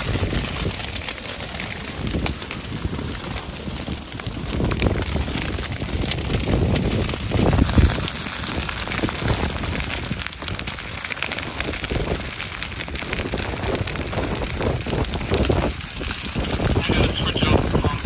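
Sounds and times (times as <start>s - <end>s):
grass fire crackling and popping: 0.0s - 18.0s
wind rumble on microphone: 0.0s - 18.0s.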